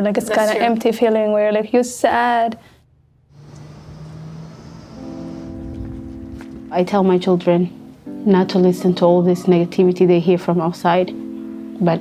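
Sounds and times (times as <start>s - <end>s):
distant traffic hum: 3.1s - 8.0s.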